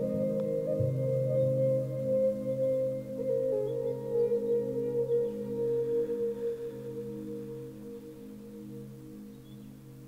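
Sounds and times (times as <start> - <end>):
sustained low ringing tones: 0.0 - 10.0.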